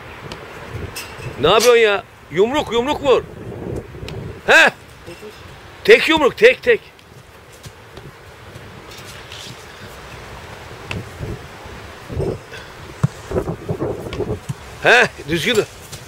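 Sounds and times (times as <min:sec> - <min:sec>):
outdoor wind noise: 0:00.0 - 0:16.0
football punched knocks: 0:13.0 - 0:13.3.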